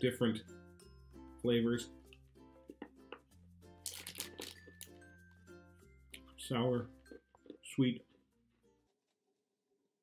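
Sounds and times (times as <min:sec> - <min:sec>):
soft background music: 0:00.0 - 0:10.0
hard candy crunching: 0:03.8 - 0:05.0.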